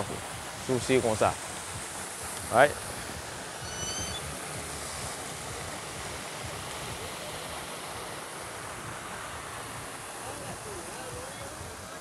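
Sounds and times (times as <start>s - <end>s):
fountain water splashing: 0.0s - 12.0s
faint high chirp: 3.6s - 4.3s.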